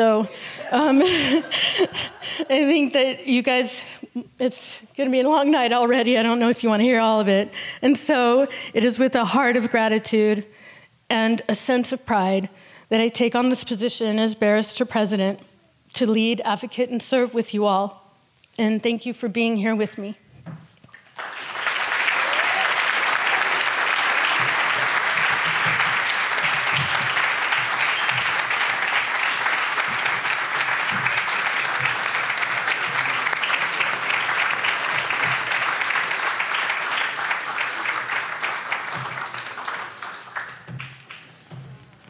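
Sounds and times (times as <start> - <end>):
large audience applauding: 21.0 - 41.4.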